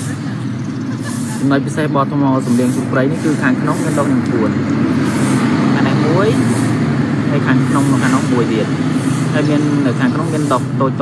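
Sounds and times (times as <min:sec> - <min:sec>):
person speaking: 0:01.1 - 0:11.0.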